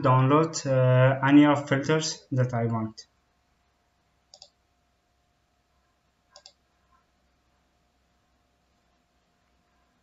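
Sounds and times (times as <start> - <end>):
computer mouse button clicks: 4.3 - 4.6, 6.3 - 6.6.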